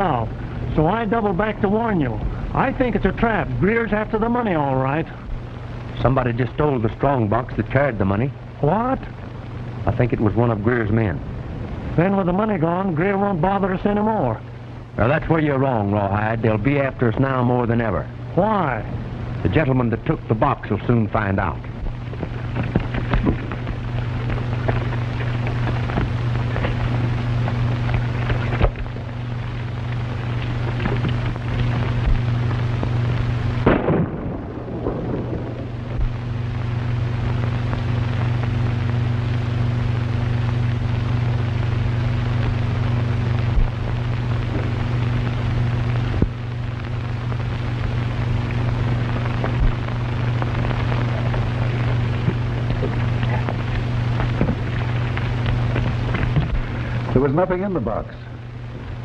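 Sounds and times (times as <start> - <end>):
crackling hiss: 0.0 - 59.0
low hum: 0.0 - 59.0.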